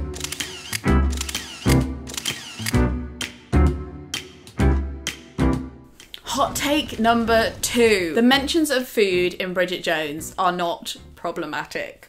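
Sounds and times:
camera shutter clicks: 0:00.1 - 0:02.8.

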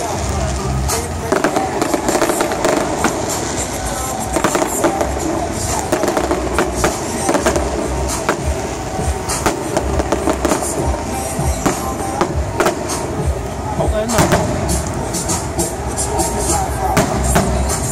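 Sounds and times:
continuous low rumble: 0:00.0 - 0:17.9
fireworks bursting: 0:00.0 - 0:17.9.

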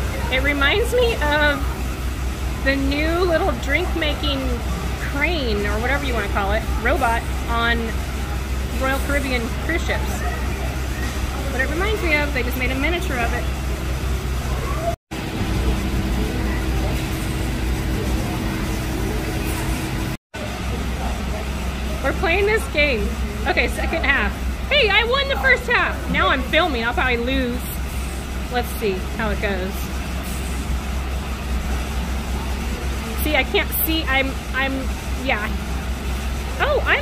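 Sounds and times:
factory machinery hum and rumble: 0:00.0 - 0:37.0
constant mid-pitched tone: 0:31.8 - 0:37.0.

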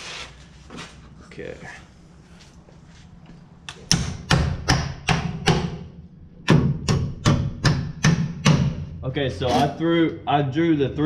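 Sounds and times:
hammer striking nails into wood: 0:03.7 - 0:08.8.

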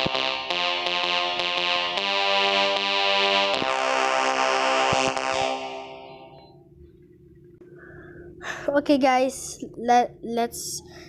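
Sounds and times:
electronic piano chord: 0:00.0 - 0:06.6.

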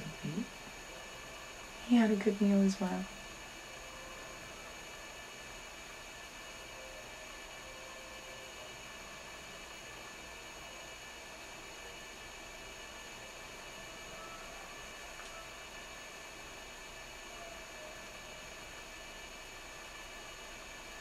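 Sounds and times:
faint hiss with hum: 0:00.0 - 0:21.0.

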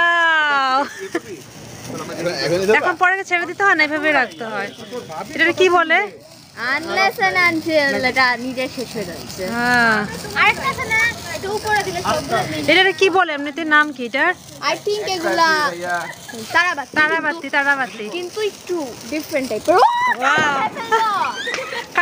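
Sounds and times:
people talking and calling out: 0:00.0 - 0:22.0.

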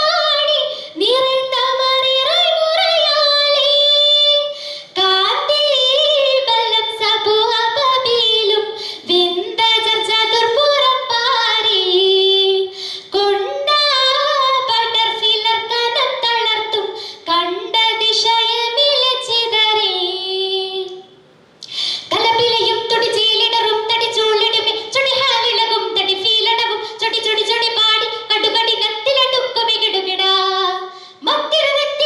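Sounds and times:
girl singing into a microphone: 0:00.0 - 0:32.0.

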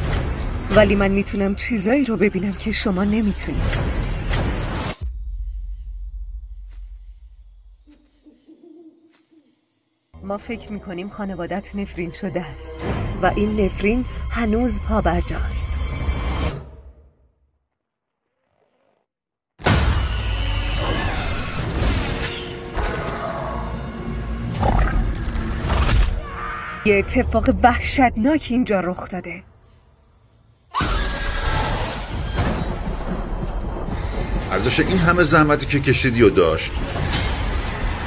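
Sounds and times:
faint owl hooting: 0:07.9 - 0:10.0
horror film music: 0:10.1 - 0:17.2, 0:19.7 - 0:38.0.

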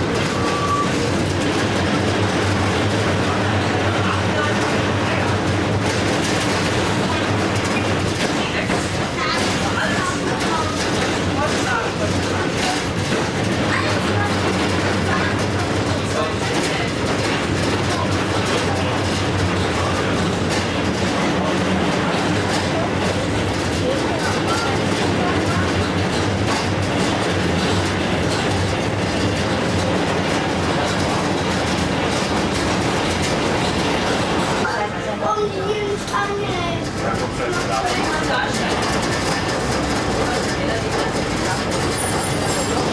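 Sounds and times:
tram motor hum: 0:00.0 - 0:42.9
wheels clacking over rail joints: 0:00.0 - 0:42.9.

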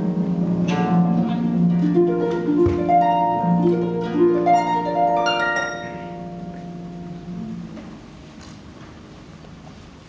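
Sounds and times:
solo harp playing: 0:00.0 - 0:08.3.

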